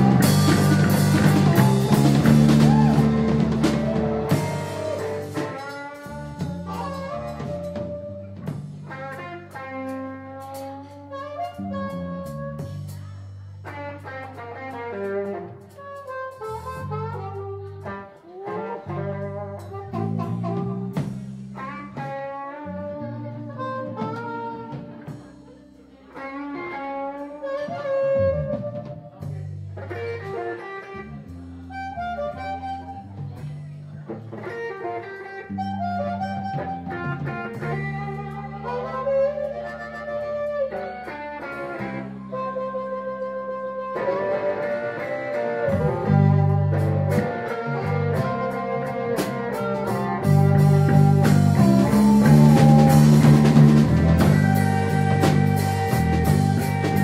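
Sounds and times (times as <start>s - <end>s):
drums and cymbal hits: 0.0s - 11.6s, 19.6s - 22.4s, 45.0s - 57.0s
electric guitar: 0.0s - 57.0s
harmonica solo with bending notes: 34.8s - 57.0s.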